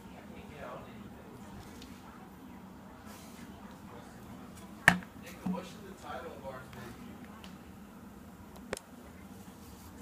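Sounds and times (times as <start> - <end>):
object knocked on wooden table: 4.9 - 5.1.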